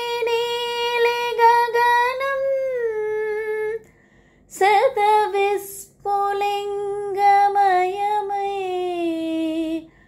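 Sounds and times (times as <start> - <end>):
woman singing: 0.0 - 3.9, 4.5 - 10.0.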